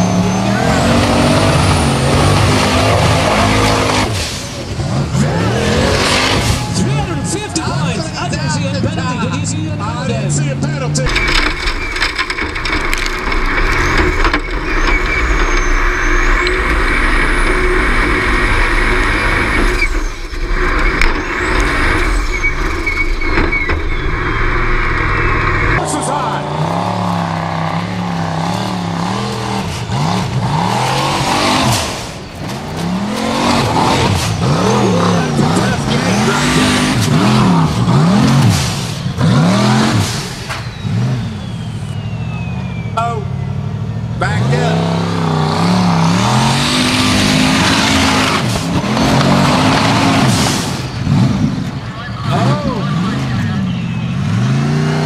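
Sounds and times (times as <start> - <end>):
buggy engine revving under load: 0.0 - 55.0.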